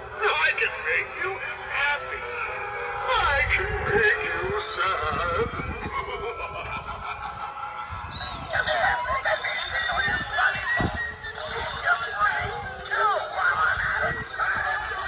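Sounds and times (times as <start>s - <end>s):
toy voice talking and cackling: 0.2s - 7.1s, 8.1s - 15.0s.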